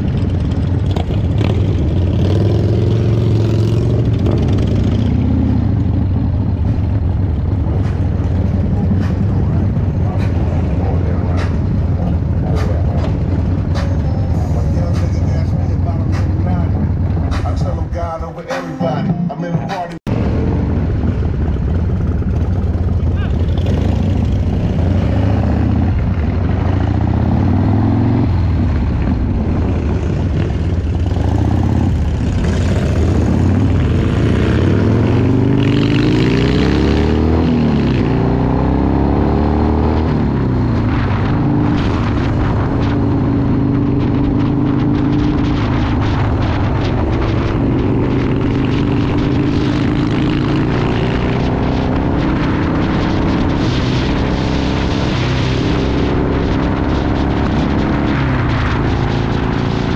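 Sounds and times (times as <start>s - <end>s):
motorcycle engine accelerating: 0.0s - 18.2s, 20.0s - 59.9s.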